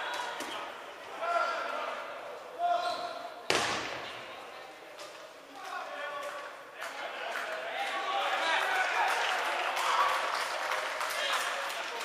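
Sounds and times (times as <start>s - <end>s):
dodgeball smack echoing: 3.4s - 4.3s.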